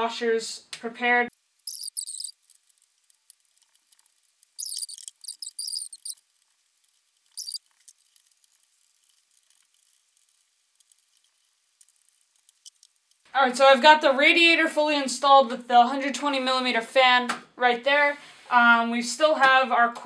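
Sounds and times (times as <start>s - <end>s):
small screws clicking and rustling: 1.4s - 13.3s.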